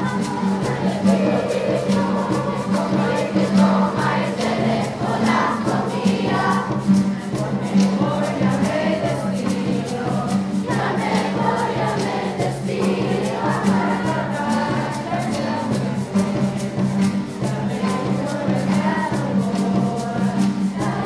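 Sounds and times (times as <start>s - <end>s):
acoustic guitar: 0.0s - 21.0s
rattling percussion beat: 0.0s - 21.0s
youth choir singing: 0.0s - 21.0s.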